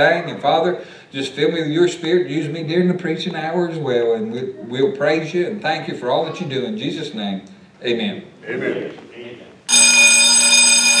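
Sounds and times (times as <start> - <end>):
high-pitched ringing tone: 9.7 - 11.0.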